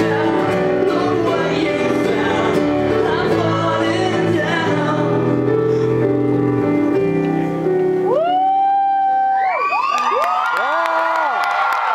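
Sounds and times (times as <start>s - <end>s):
piano chord: 0.0s - 8.7s
audience cheering and whooping: 8.0s - 11.9s
audience clapping: 9.5s - 11.9s.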